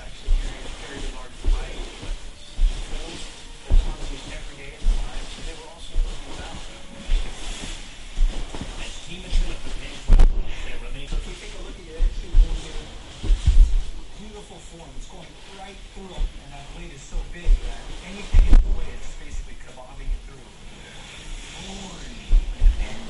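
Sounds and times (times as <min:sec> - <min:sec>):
man talking: 0:00.0 - 0:07.7, 0:08.5 - 0:23.0
background music: 0:00.0 - 0:12.0
body thudding on carpeted floor: 0:00.0 - 0:14.2, 0:17.2 - 0:19.5, 0:22.3 - 0:23.0.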